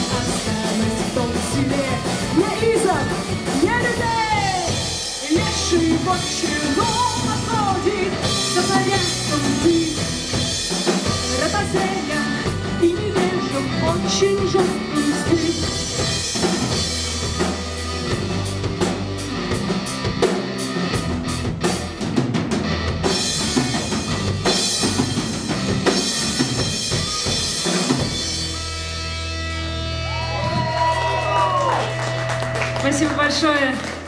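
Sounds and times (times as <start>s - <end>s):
folk-rock band playing live: 0.0s - 34.0s.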